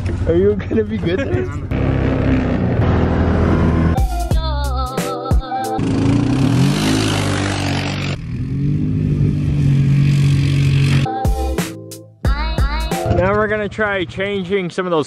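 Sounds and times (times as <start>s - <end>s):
utv engine revving: 1.6s - 4.0s, 5.8s - 11.1s
music with a beat: 4.0s - 5.8s, 11.1s - 13.1s.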